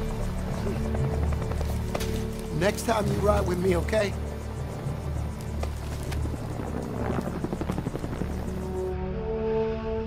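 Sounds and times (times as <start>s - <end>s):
helicopter rotors chopping: 0.0s - 8.9s
orchestral film score: 0.0s - 10.0s.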